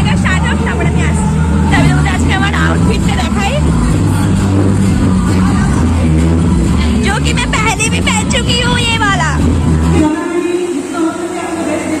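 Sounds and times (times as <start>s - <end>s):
low rumble: 0.0s - 10.2s
women chattering: 6.7s - 12.0s.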